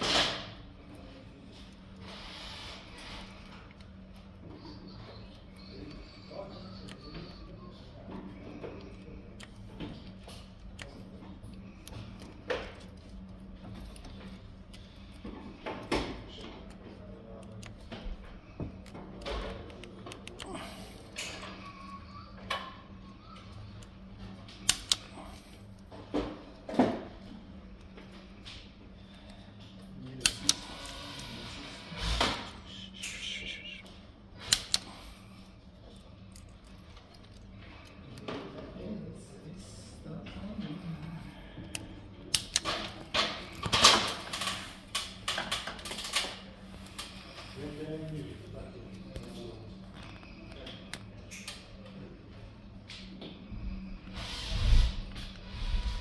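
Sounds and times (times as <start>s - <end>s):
low steady hum: 0.0s - 56.0s
punch-down tool snapping clicks: 24.6s - 25.0s, 41.7s - 42.7s.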